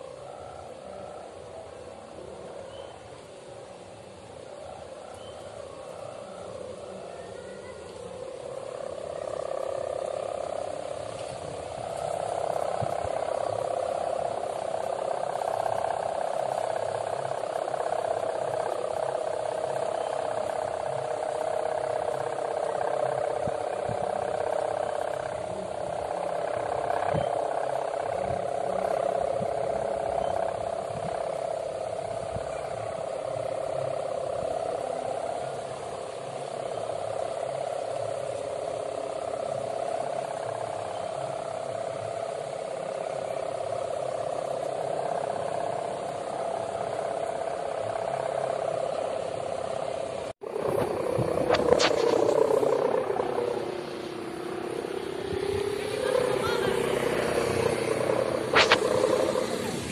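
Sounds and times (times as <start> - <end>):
kite bow droning in the wind: 0.0 - 59.9.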